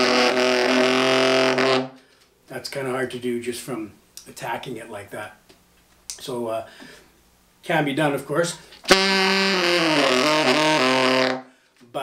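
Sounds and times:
tenor saxophone growling low note: 0.0 - 1.9, 8.9 - 11.4.

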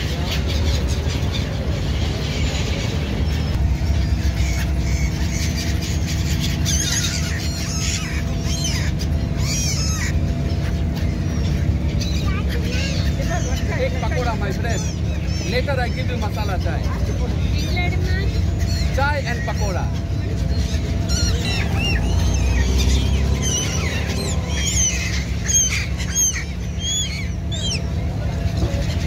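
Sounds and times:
gulls calling: 0.0 - 29.0
steady low rumble: 0.0 - 29.0.

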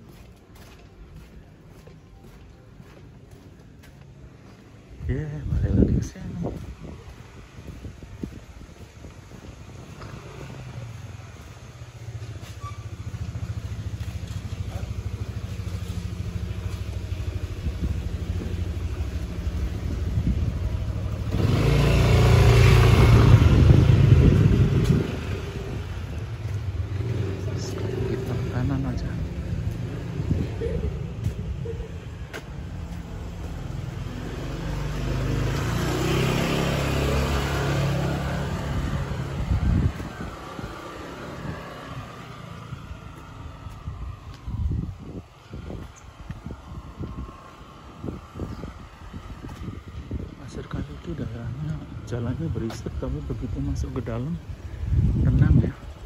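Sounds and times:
motor scooter engines passing: 0.0 - 56.0.

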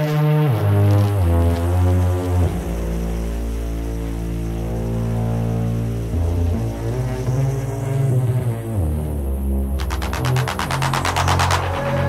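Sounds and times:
deep droning bass: 0.0 - 12.0
held synth chords: 9.8 - 12.0.

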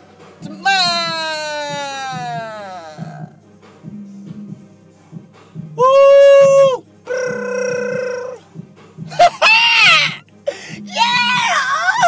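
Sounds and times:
quiet low backing beat: 0.0 - 12.0
man wailing wordless notes: 0.4 - 3.4, 5.8 - 8.4, 9.1 - 12.0.

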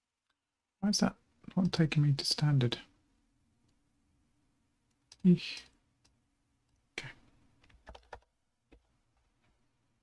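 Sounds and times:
computer keyboard keystrokes: 7.6 - 8.8.

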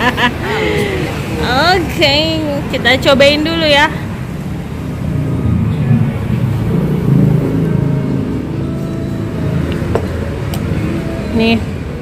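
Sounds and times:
vehicle engine passing: 0.0 - 12.0.

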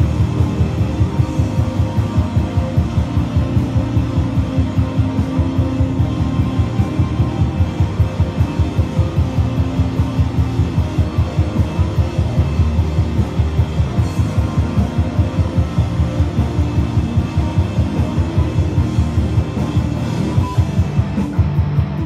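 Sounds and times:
amplified electric string instrument: 0.0 - 22.0
bass-heavy backing track beat: 0.0 - 22.0.

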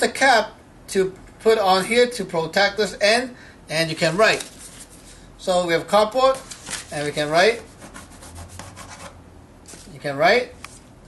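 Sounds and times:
pen scratching on cardboard: 7.7 - 9.1.

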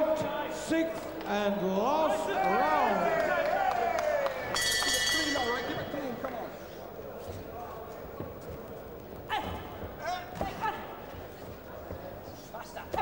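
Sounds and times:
people shouting: 1.8 - 4.6
boxing ring bell ringing: 4.5 - 5.9.

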